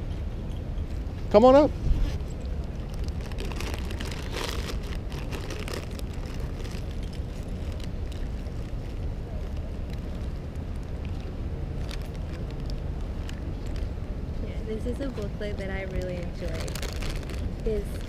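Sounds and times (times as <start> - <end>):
wind rumble on microphone: 0.0 - 18.0.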